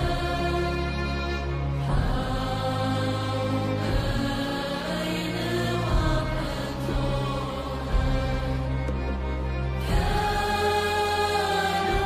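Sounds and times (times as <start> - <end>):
choir singing long notes: 0.0 - 12.0
sustained accompaniment: 0.0 - 12.0.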